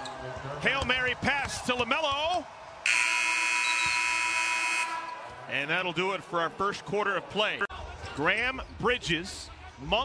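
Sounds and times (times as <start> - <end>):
arena horn long blast: 2.9 - 5.2.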